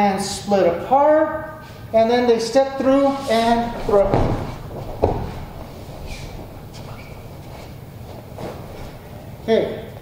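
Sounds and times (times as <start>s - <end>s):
bare feet shuffling: 2.8s - 9.2s
body thumping onto padded mat: 3.6s - 7.5s
sharp thud: 3.8s - 6.4s.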